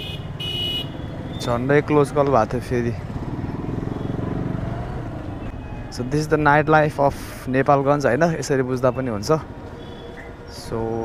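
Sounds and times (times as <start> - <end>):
motorcycle engine running: 0.0 - 5.5.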